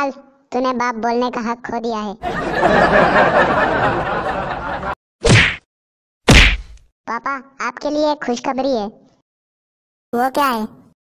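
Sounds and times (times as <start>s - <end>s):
cartoon whack sound effect: 5.2s - 5.6s, 6.3s - 6.8s.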